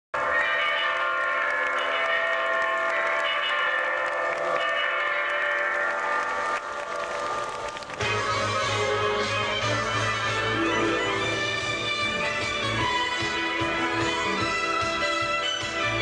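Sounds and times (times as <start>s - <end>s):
show music with loud held chords: 8.0s - 16.0s.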